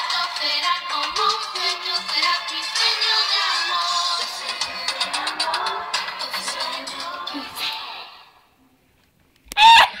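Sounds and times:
pop song: 0.0s - 8.4s
girl shrieking: 9.5s - 10.0s.

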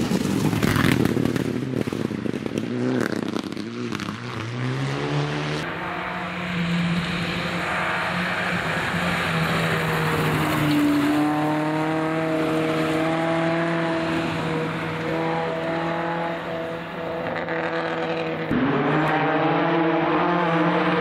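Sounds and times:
gravel crackling: 0.0s - 4.7s
rally car engine accelerating: 0.2s - 21.0s.

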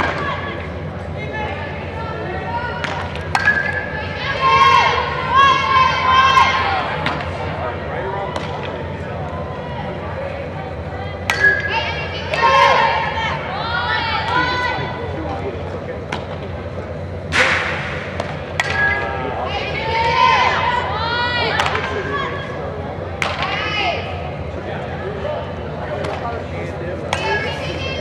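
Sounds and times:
players shouting in echoing hall: 0.0s - 28.0s
softballs being hit and caught: 17.3s - 19.1s, 23.2s - 23.6s.

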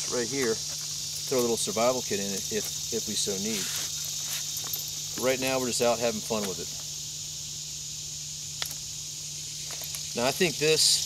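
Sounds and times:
insects chirring: 0.0s - 11.0s.

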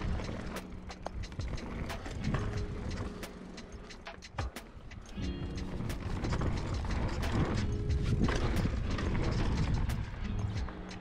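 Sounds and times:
tyres rumbling on loose dirt: 0.0s - 11.0s.

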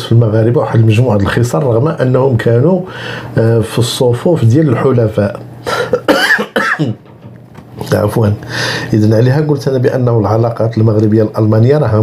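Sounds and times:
man coughing: 5.7s - 7.1s.

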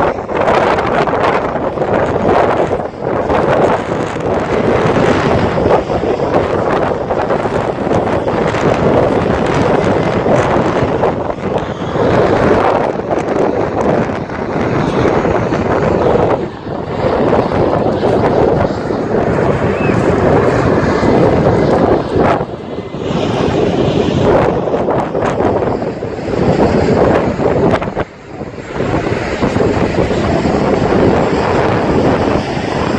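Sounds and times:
wind buffeting microphone: 0.0s - 32.9s
city traffic: 1.7s - 24.4s.

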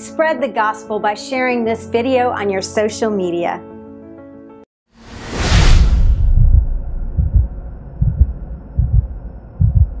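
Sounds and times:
heartbeat thumps: 6.0s - 10.0s.

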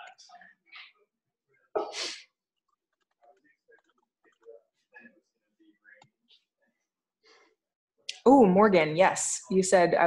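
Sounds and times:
person sneezing: 1.8s - 2.3s.

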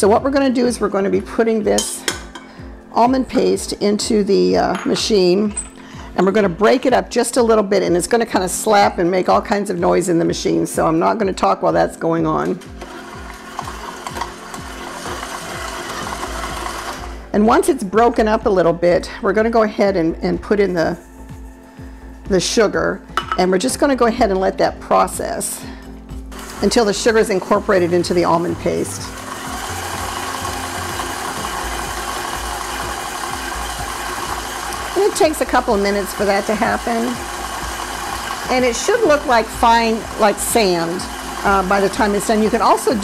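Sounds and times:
stand mixer motor hum: 12.8s - 17.2s, 26.3s - 43.0s.

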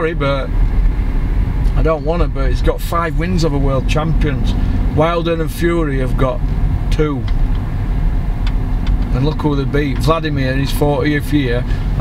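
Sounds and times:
car interior engine and road rumble: 0.0s - 12.0s.

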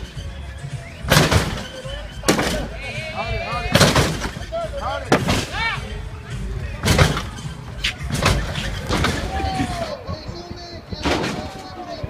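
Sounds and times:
people shouting: 0.3s - 6.0s, 8.3s - 10.3s
car slamming down bangs: 1.0s - 2.8s, 3.7s - 5.6s, 6.8s - 9.8s.

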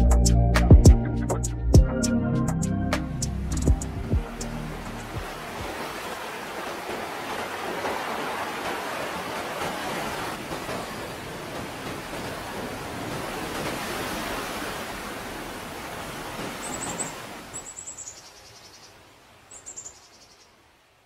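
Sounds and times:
steady rushing noise: 3.3s - 16.5s.

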